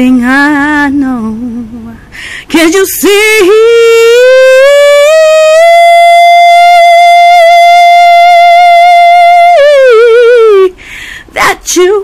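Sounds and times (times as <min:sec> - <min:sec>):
woman singing long note: 0:02.6 - 0:10.7.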